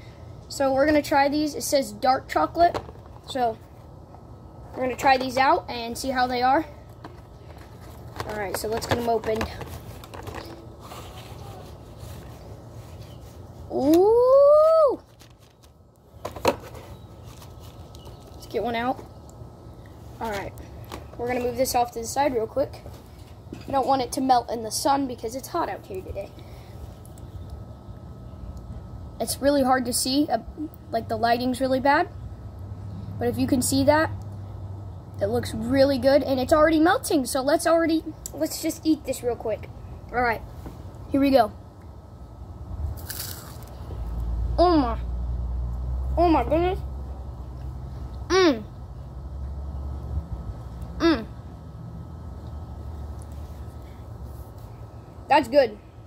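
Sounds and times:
boy saying ooh: 0:13.7 - 0:15.0, 0:51.0 - 0:51.3.

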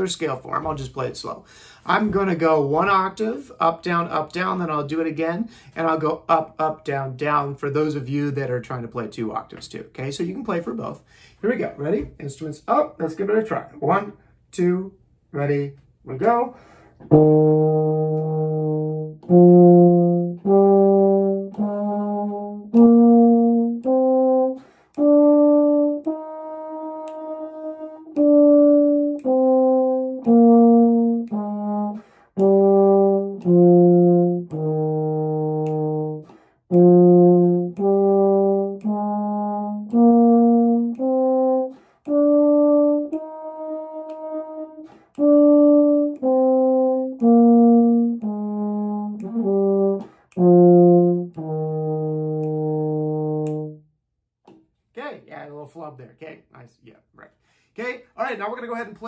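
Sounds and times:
euphonium playing a slow scale: 0:17.1 - 0:53.8.

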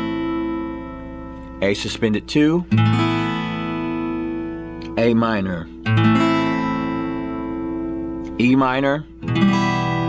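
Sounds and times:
acoustic guitar chord ringing: 0:00.0 - 0:10.0.

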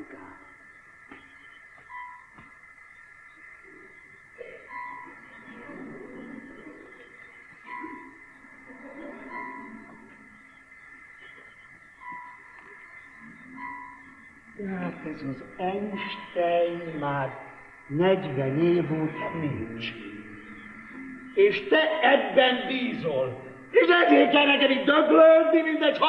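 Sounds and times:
faint indistinct murmuring: 0:00.0 - 0:26.0
steady high electronic tones: 0:00.0 - 0:26.0
short electronic beeps: 0:19.1 - 0:21.3, 0:23.7 - 0:24.5.

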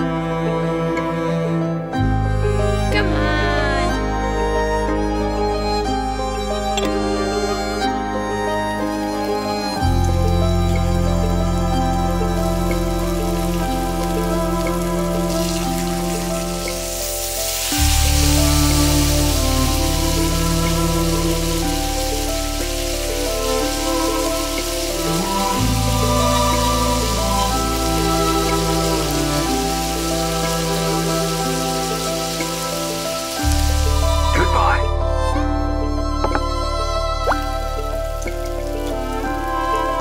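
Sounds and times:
background music of held notes: 0:00.0 - 0:40.0
shrimp sizzling into pan: 0:12.4 - 0:34.3
butter sizzling in a wok: 0:12.5 - 0:34.2.

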